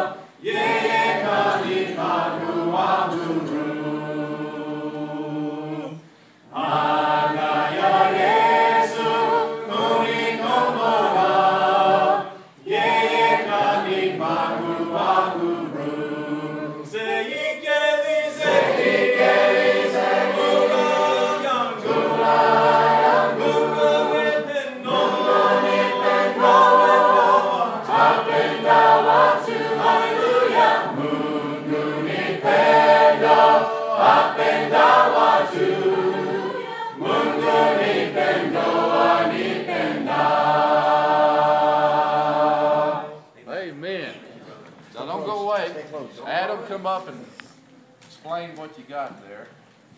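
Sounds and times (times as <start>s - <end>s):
group singing hymn in harmony: 0.0s - 43.4s.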